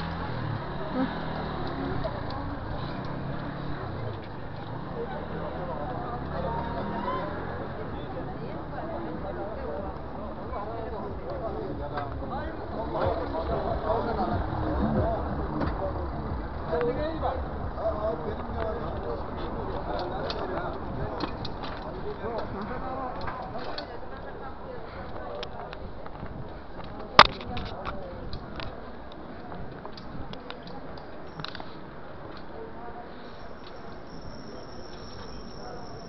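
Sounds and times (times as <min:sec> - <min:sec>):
bicycle wheels rumbling on cobblestones: 0:00.0 - 0:36.0
people's voices: 0:00.0 - 0:36.0.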